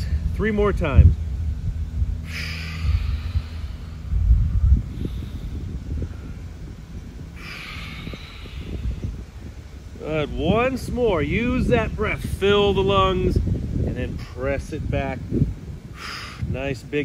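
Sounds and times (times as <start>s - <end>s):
continuous low rumble: 0.0s - 17.0s
man breathing: 2.1s - 9.8s, 15.8s - 16.5s.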